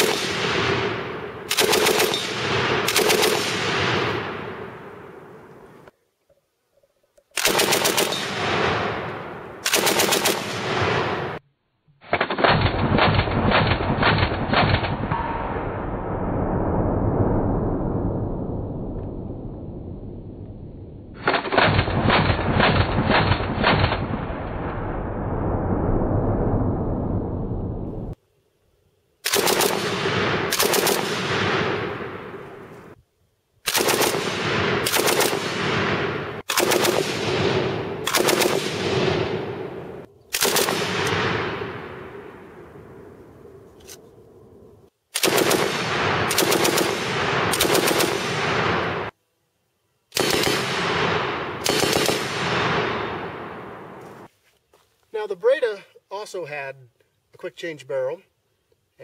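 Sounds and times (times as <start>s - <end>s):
rolling gunfire echo: 0.0s - 5.6s, 7.4s - 11.4s, 29.2s - 33.0s, 33.6s - 43.2s, 45.1s - 49.2s, 50.1s - 54.3s
machine gun firing short bursts: 1.5s - 3.6s, 7.4s - 8.4s, 9.6s - 10.6s, 29.2s - 31.2s, 33.7s - 35.5s, 36.5s - 37.2s, 38.0s - 38.8s, 40.4s - 41.1s, 45.2s - 48.4s, 50.2s - 50.7s, 51.6s - 52.4s.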